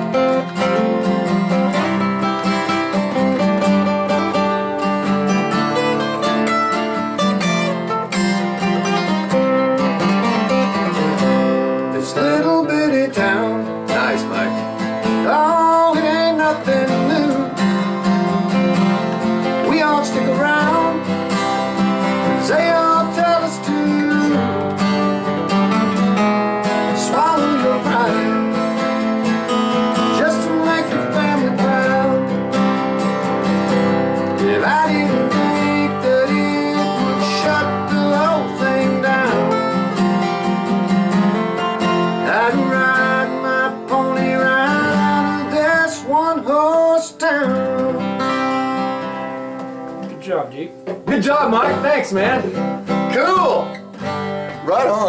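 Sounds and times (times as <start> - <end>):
acoustic guitars strumming: 0.0 - 55.0.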